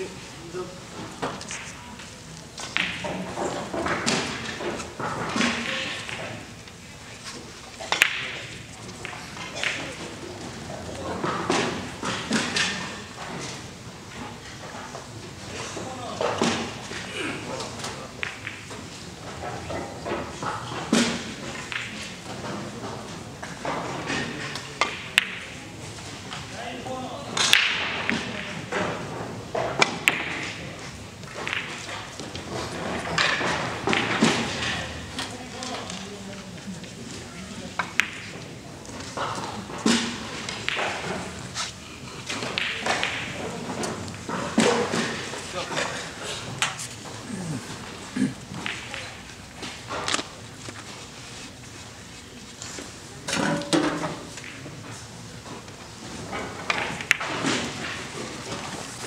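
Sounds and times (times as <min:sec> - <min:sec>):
billiard balls clicking: 0:07.8 - 0:13.6, 0:21.4 - 0:25.6, 0:42.2 - 0:50.3
murmur of voices: 0:14.7 - 0:31.6, 0:32.4 - 0:50.5.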